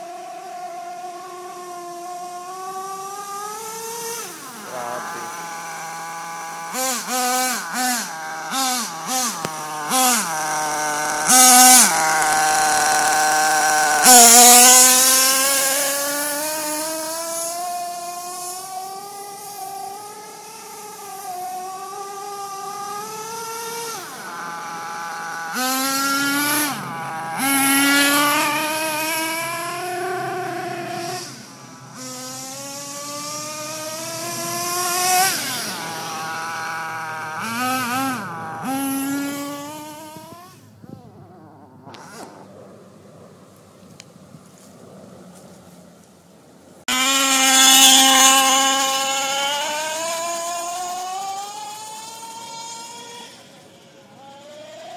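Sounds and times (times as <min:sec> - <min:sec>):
toy car motor revving: 0:00.1 - 0:42.5, 0:46.9 - 0:54.9.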